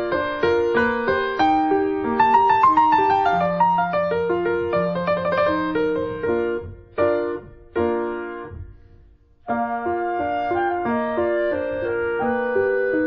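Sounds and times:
piano music: 0.0 - 13.0.

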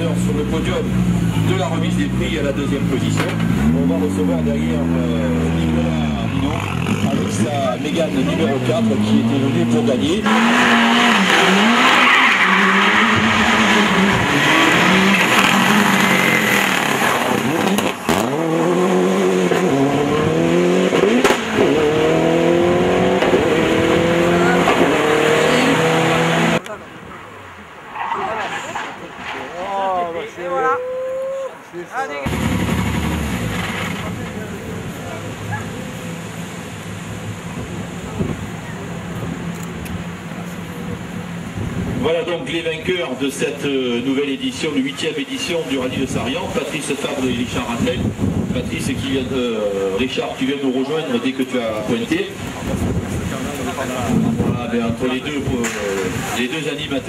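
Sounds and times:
rally car engines accelerating: 0.0 - 26.7, 32.2 - 57.0.

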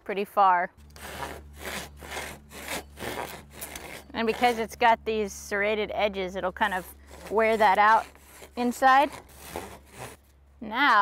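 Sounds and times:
rebar rasping inside bamboo pole: 0.8 - 5.0, 6.4 - 10.4.

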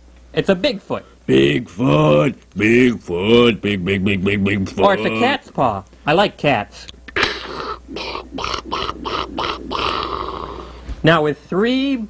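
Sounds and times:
breathy wheezing laughter: 7.1 - 10.8.

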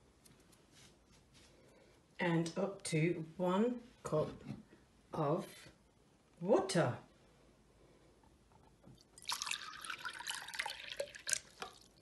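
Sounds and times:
water pouring into a glass: 9.0 - 12.0.

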